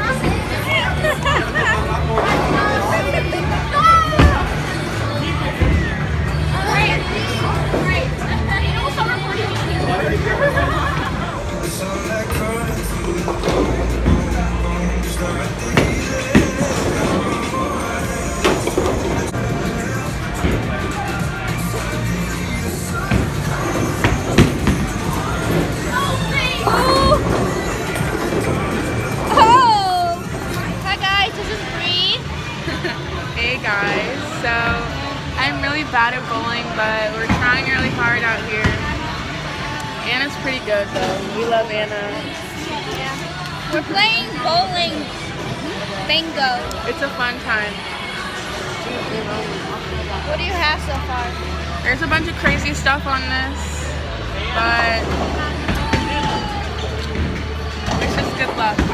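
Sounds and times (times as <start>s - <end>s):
bowling balls rolling: 0.0s - 8.7s, 9.3s - 31.8s
background music: 0.0s - 58.9s
people chattering: 0.0s - 58.9s.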